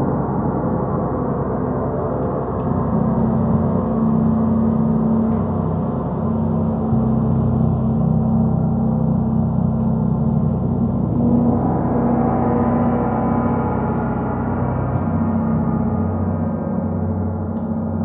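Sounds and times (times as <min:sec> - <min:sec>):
large gongs ringing: 0:02.6 - 0:18.0.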